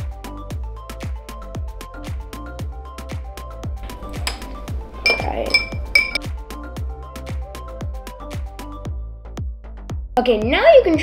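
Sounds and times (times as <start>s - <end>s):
spoon clinking against glass: 3.8s - 6.2s
spoon stirring liquid: 3.8s - 6.2s.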